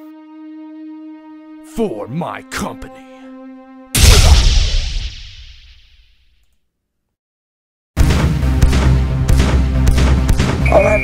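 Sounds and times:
explosion with deep rumble: 0:04.0 - 0:05.8.

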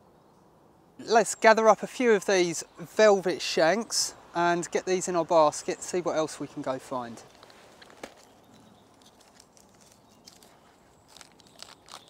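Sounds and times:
mushrooms snapping off tree: 0:07.4 - 0:12.0.

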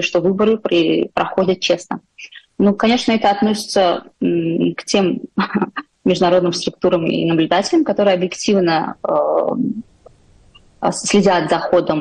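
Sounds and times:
woman speaking: 0:00.0 - 0:09.9, 0:10.8 - 0:12.0.

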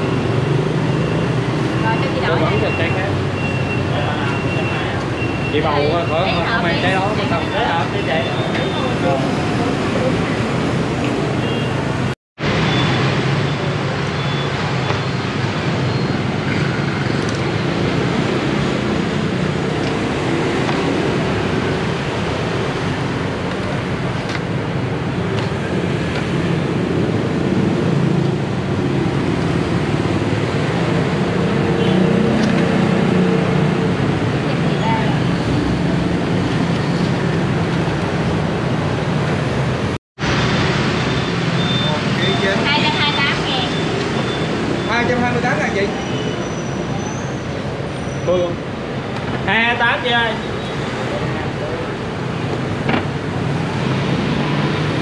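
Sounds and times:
road traffic noise: 0:00.0 - 0:55.0.

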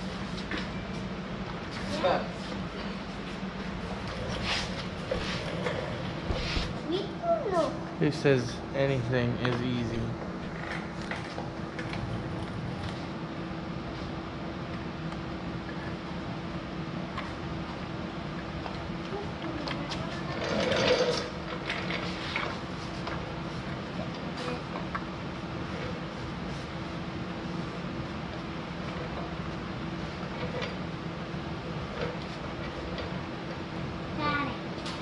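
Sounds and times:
machine hum: 0:00.0 - 0:35.0.

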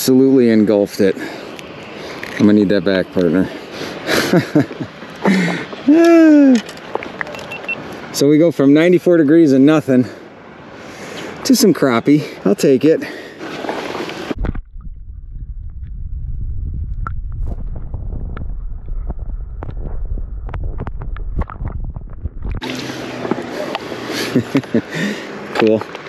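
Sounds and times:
muffled underwater rumble: 0:14.4 - 0:22.6.

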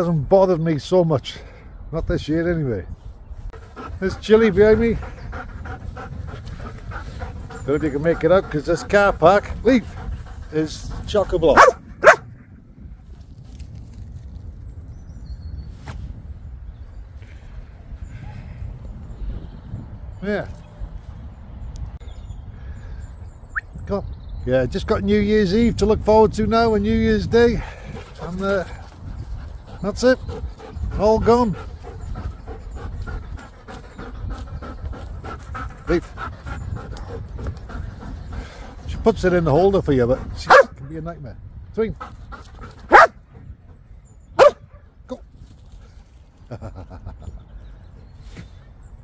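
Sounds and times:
wind rumbling on microphone: 0:00.0 - 0:49.0
dog panting: 0:03.5 - 0:12.2, 0:27.6 - 0:40.7, 0:42.0 - 0:43.1
dog bark: 0:11.6 - 0:12.2, 0:40.5 - 0:40.7, 0:42.9 - 0:43.1, 0:44.4 - 0:44.6.

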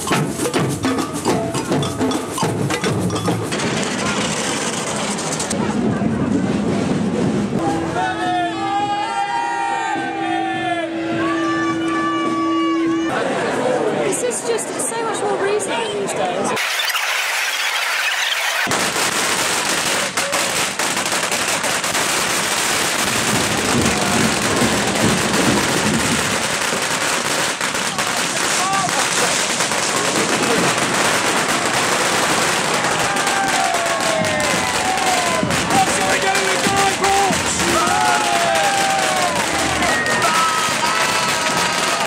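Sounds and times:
firecrackers banging and crackling: 0:00.0 - 0:08.2, 0:16.6 - 0:42.0
crowd voices: 0:00.0 - 0:18.7, 0:23.3 - 0:26.6, 0:27.8 - 0:42.0.

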